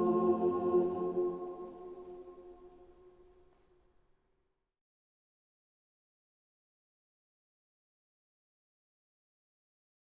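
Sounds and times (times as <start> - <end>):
choir holding a chord: 0.0 - 2.9.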